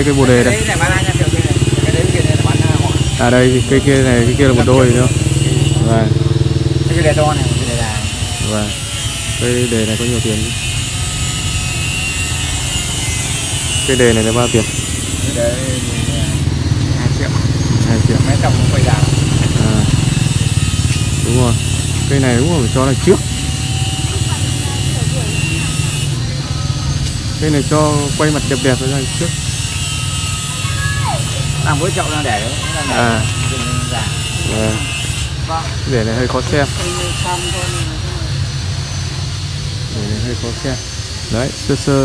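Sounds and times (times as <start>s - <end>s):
small engine running: 0.0s - 42.0s
steady low buzz: 0.0s - 42.0s
voices talking: 0.0s - 42.0s.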